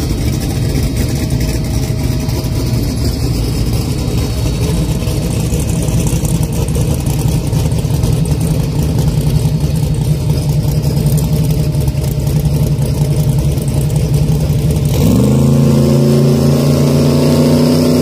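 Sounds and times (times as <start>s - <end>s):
car engine idling and revving: 0.0s - 18.0s.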